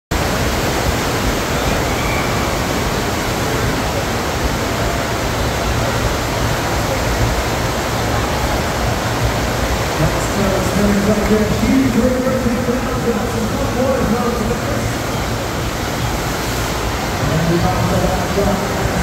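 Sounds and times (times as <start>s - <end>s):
steady rush of water: 0.1s - 19.0s.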